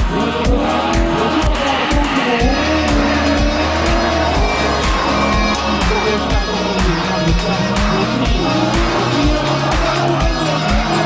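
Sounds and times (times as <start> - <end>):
car engine revving: 0.0 - 11.0
music with steady kick beat: 0.0 - 11.0.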